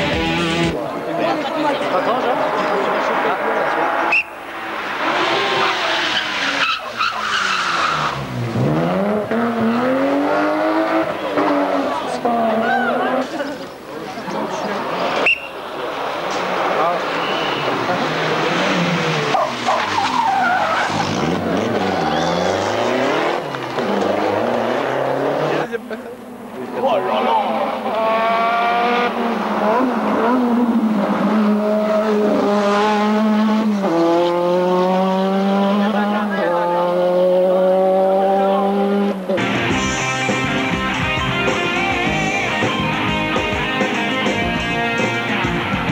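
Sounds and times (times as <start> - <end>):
rally car engine revving: 0.0 - 0.8, 2.0 - 13.7, 14.5 - 25.8, 27.3 - 45.9
car accelerating through gears: 2.4 - 13.2, 16.2 - 25.7, 27.6 - 39.4.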